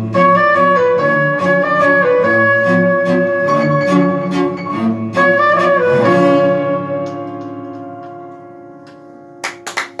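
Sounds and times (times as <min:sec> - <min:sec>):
piano and cello chord: 0:00.0 - 0:09.6
audience clapping: 0:08.9 - 0:10.0.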